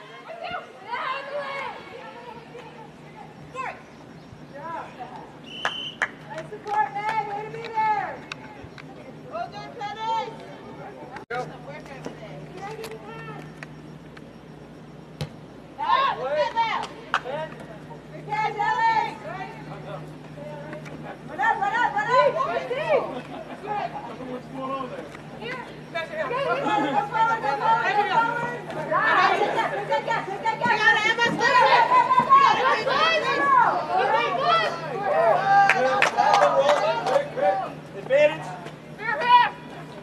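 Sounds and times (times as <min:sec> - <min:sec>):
low steady hum: 0:00.0 - 0:40.0
voices chattering and calling: 0:00.0 - 0:40.0
distant high-pitched shout: 0:15.8 - 0:16.8.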